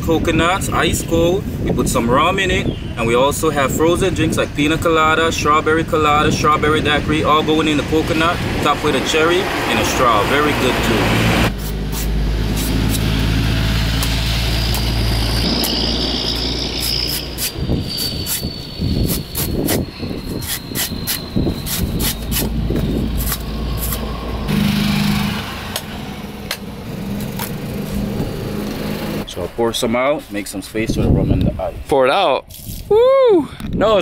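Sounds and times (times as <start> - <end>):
engine humming: 4.5 - 29.6
machete chopping coconut: 11.5 - 13.2.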